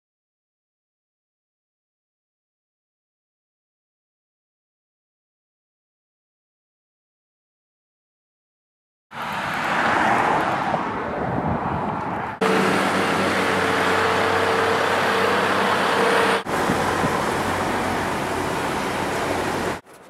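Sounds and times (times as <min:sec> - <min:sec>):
dump truck and excavator hum: 0:12.2 - 0:20.0
heavy diesel machinery running: 0:12.4 - 0:19.9.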